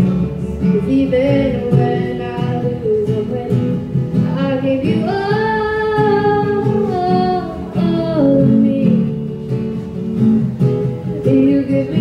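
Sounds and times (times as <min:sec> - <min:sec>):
strummed acoustic guitar: 0:00.0 - 0:12.0
woman singing: 0:00.1 - 0:09.5, 0:11.2 - 0:12.0.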